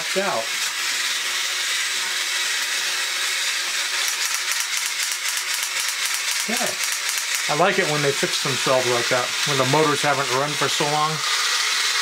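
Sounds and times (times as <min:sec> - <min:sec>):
toy robot motor whirring: 0:00.0 - 0:12.0.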